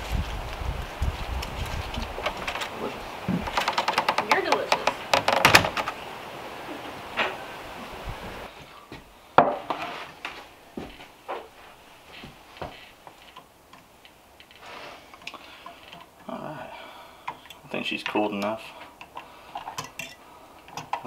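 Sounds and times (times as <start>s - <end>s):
light outdoor hiss: 0.0s - 21.0s.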